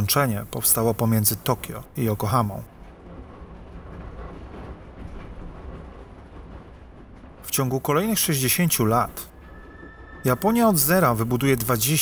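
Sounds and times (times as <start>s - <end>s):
narration: 0.0s - 2.8s, 7.4s - 12.0s
train running on rails: 0.0s - 12.0s.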